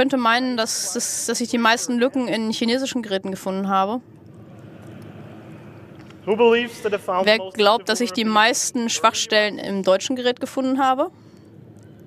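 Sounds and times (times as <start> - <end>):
hall audience background noise: 4.2 - 7.1.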